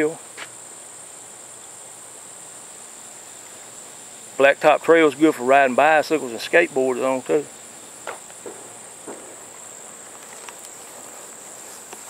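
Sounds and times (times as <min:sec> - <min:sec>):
crickets chirping chorus: 0:00.0 - 0:12.0.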